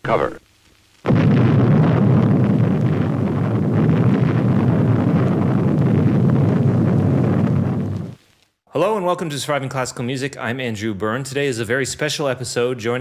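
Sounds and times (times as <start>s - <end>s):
explosion with low rumble: 1.0s - 8.2s.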